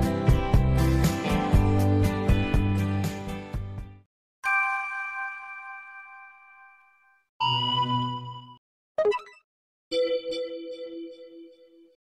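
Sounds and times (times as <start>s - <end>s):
bell-like chime ding: 4.4s - 9.2s.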